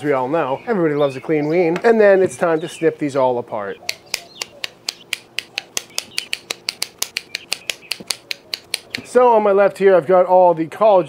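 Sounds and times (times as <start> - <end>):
kitchen shears snipping: 3.8 - 9.2.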